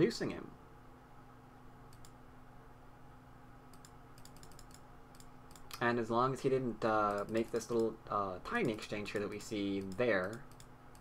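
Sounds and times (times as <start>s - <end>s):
faint electrical hum: 0.0s - 11.0s
sharp computer clicks: 1.9s - 2.2s, 3.7s - 5.9s, 7.0s - 8.0s, 8.6s - 11.0s.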